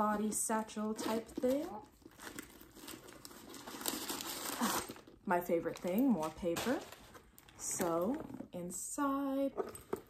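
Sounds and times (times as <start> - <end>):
packing paper crinkling: 0.9 - 8.2.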